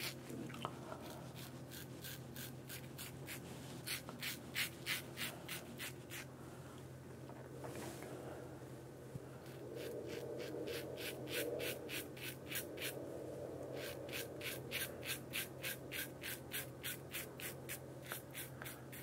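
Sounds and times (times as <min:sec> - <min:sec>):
razor scraping stubble: 0:01.0 - 0:06.3, 0:13.8 - 0:19.0.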